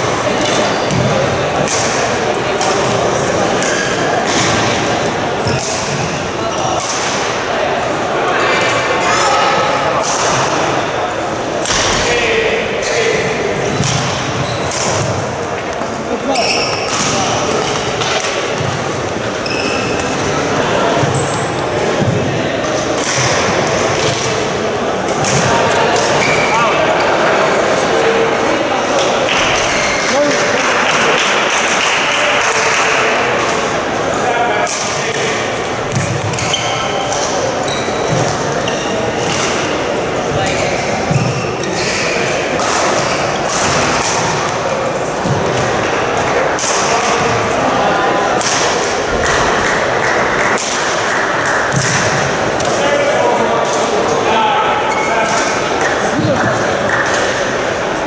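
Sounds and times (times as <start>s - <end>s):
murmur of voices: 0.0s - 58.0s
racket striking shuttlecock: 5.4s - 6.1s, 13.7s - 15.9s.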